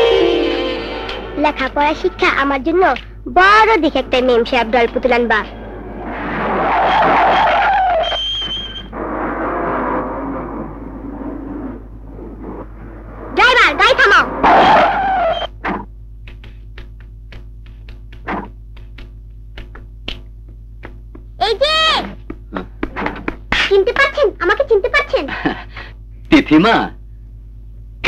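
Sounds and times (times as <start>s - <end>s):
steady low hum: 0.0s - 28.0s
car tyre squeal: 5.5s - 11.9s, 14.0s - 15.5s
short sharp taps: 15.6s - 21.4s.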